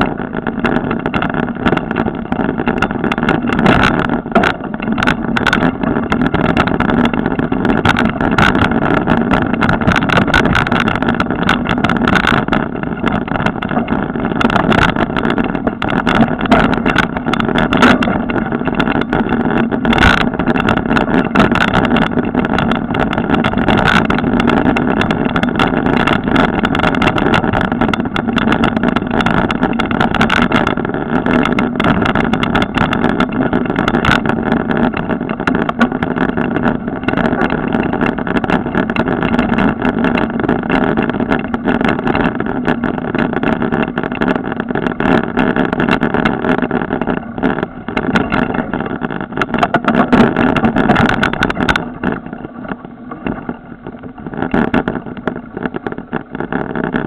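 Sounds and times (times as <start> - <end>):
bike knocks and rattles: 0.0 - 57.0
bike tyres rolling on dirt: 0.0 - 57.0.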